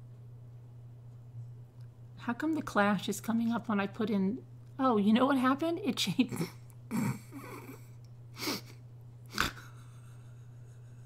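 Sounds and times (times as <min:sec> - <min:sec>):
steady low hum: 0:00.0 - 0:11.0
woman laughing breathily: 0:06.3 - 0:11.0.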